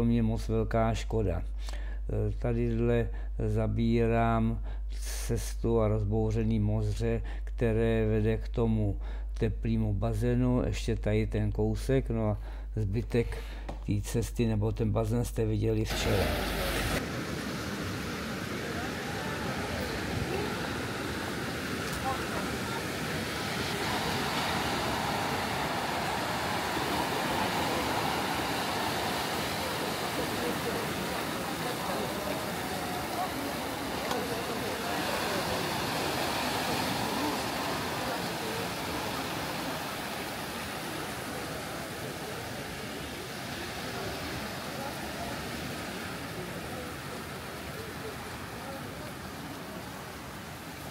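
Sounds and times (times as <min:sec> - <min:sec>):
waves breaking on rocky shore: 0:15.9 - 0:50.9.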